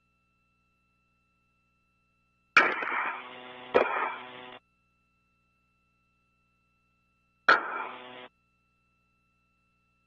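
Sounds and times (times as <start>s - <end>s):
radio buzzing hum: 2.6s - 4.6s, 7.5s - 8.3s
radio click: 2.6s - 4.6s, 7.5s - 8.3s.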